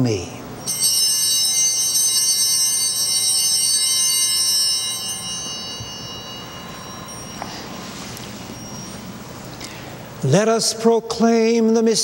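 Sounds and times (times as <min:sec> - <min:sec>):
altar bells ringing: 0:00.0 - 0:11.0.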